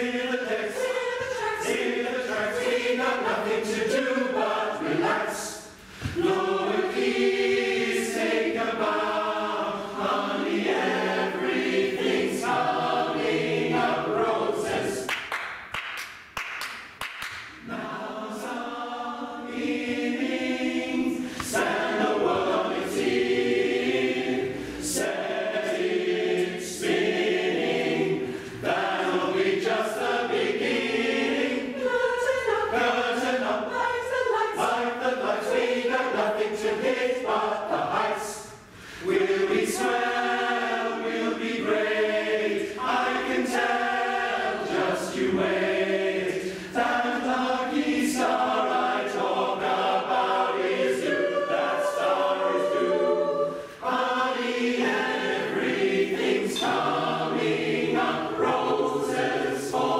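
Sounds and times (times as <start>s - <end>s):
mixed choir singing: 0.0s - 15.2s, 17.5s - 59.9s.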